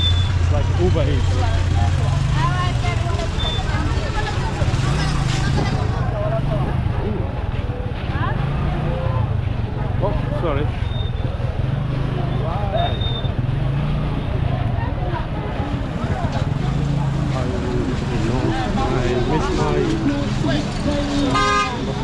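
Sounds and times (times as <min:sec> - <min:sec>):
crowd voices talking and calling: 0:00.0 - 0:22.0
motor traffic engine hum: 0:00.0 - 0:22.0.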